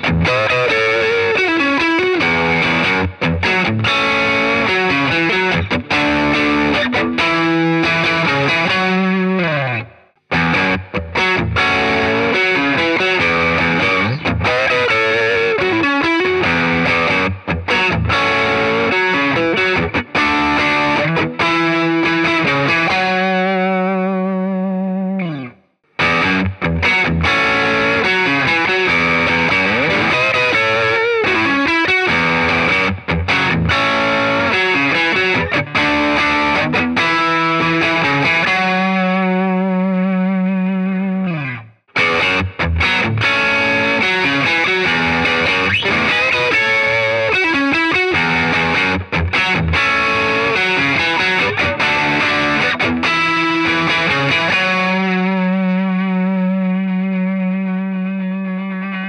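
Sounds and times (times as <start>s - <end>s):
overdriven electric guitar lick: 0.0s - 59.0s.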